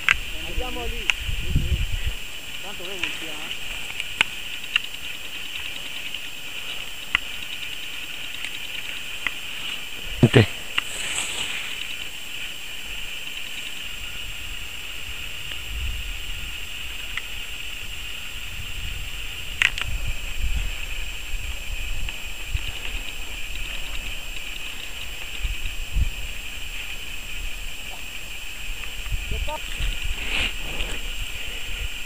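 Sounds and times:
wind rumbling on microphone: 0.0s - 7.0s, 13.8s - 32.0s
steady high hiss: 0.0s - 32.0s.

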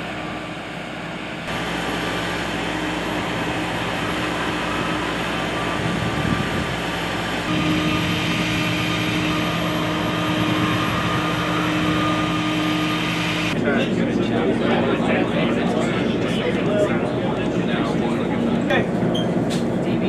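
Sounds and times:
machinery hum: 0.0s - 20.0s.

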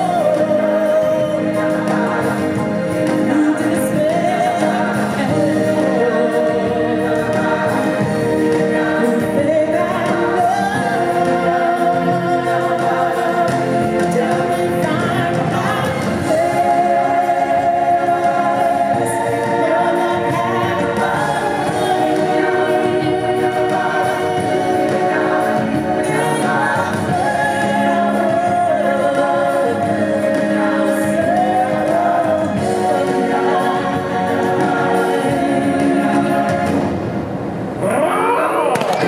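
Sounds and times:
choir singing: 0.0s - 37.2s
steady musical accompaniment: 0.0s - 39.0s.

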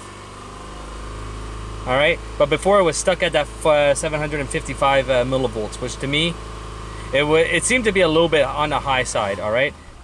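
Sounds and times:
car engine hum from cabin: 0.0s - 10.0s.

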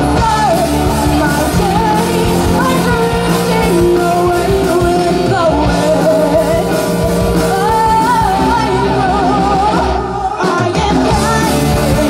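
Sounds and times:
live rock band: 0.0s - 12.0s
woman singing: 0.0s - 12.0s.

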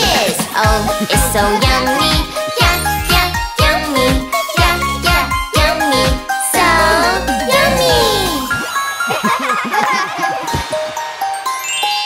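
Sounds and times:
children's cartoon music: 0.0s - 12.0s
cartoon voice calling out: 6.7s - 8.5s
tinkling sparkle effect: 10.9s - 12.0s.

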